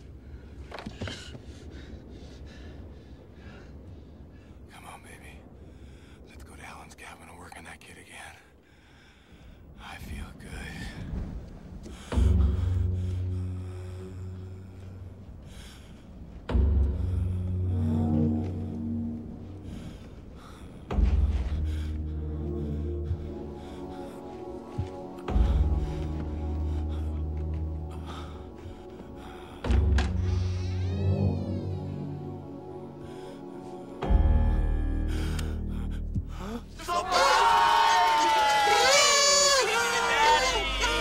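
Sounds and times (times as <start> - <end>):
suspenseful film score: 0.0 - 41.0
man whispering: 4.6 - 5.6, 6.2 - 8.6, 9.7 - 11.2.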